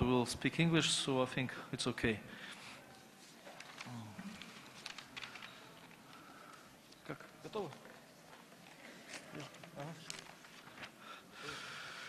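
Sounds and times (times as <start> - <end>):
paper handling: 3.2 - 11.0.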